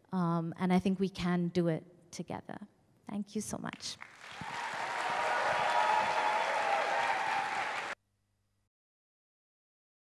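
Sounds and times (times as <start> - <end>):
audience applauding: 4.0 - 8.0.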